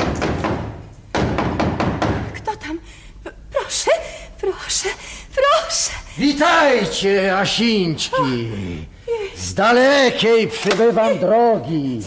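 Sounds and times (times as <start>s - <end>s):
heavy knocking on wooden door: 0.0s - 2.4s.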